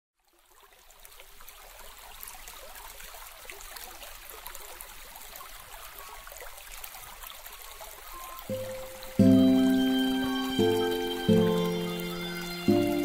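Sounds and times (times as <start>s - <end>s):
trickle of flowing water: 0.2s - 13.0s.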